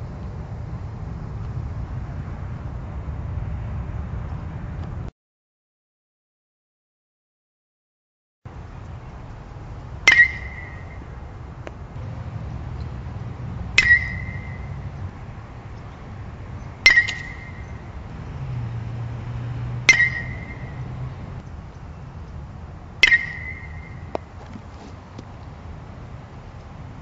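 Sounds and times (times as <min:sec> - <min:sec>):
metal bat pinging balls: 0:10.0 - 0:11.8, 0:13.7 - 0:16.0, 0:16.6 - 0:18.8, 0:19.8 - 0:21.4, 0:23.0 - 0:25.3.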